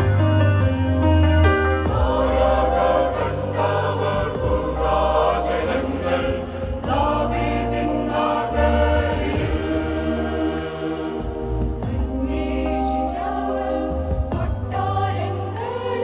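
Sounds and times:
steady bass: 0.0s - 16.0s
mixed choir singing: 1.7s - 16.0s.

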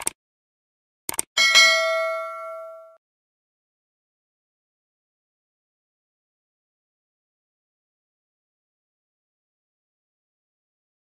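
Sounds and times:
short clicks: 1.1s - 1.3s
bell-like ding: 1.4s - 3.0s.

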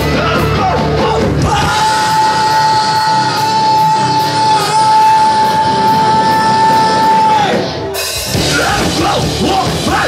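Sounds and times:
rock band playing live: 0.0s - 10.0s.

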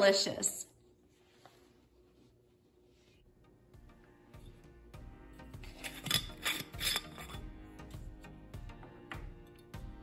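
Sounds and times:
soft background music: 1.2s - 10.0s
glass jar scraping: 5.6s - 7.5s.

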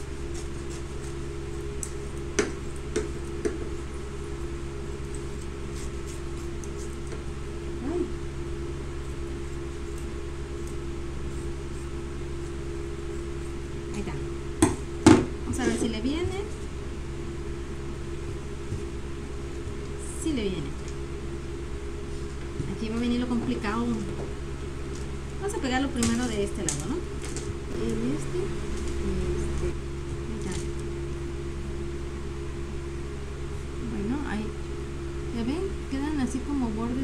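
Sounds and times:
electric fan humming: 0.0s - 37.0s.

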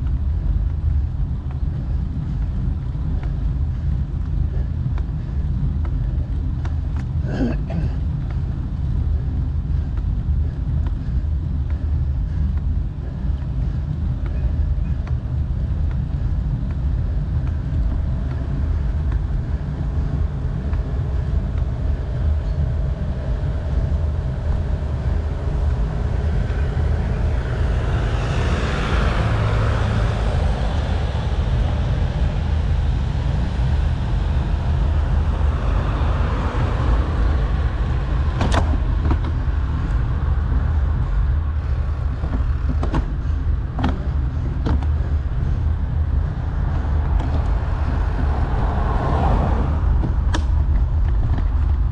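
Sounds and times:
rolling road noise: 0.0s - 51.9s
wind rumble: 0.0s - 51.9s.

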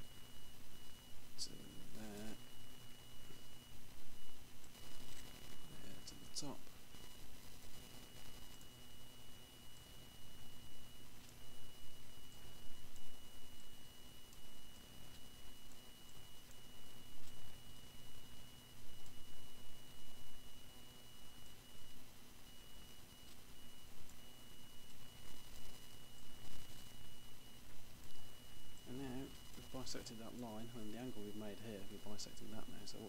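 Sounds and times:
high whine: 0.0s - 33.0s
low electrical hum: 0.0s - 33.0s.

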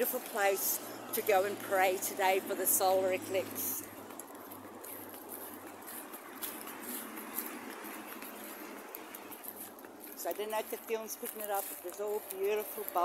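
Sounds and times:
footsteps through grass: 0.0s - 13.0s
motorway traffic hiss: 0.0s - 13.0s.

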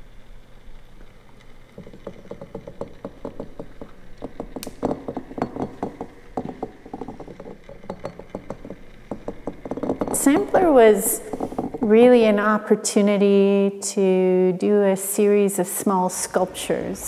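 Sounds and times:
glass bottles clinking: 1.8s - 12.1s.

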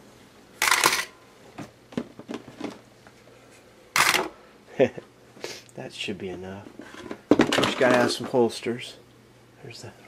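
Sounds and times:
person laughing: 4.7s - 5.1s
magazines clattering onto a table: 6.9s - 8.4s.

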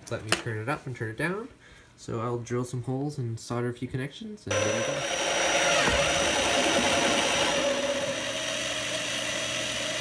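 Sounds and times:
power drill cutting plastic: 4.5s - 10.0s.

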